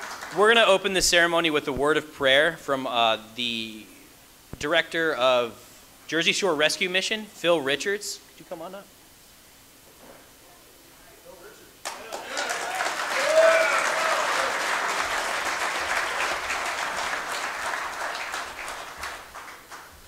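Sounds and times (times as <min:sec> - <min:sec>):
audience applauding: 0:00.0 - 0:00.7, 0:11.8 - 0:20.0
person cheering: 0:11.9 - 0:15.0.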